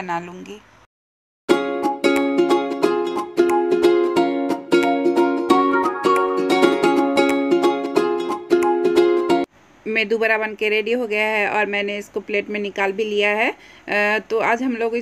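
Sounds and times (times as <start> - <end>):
plucked string tune: 1.5 - 9.4.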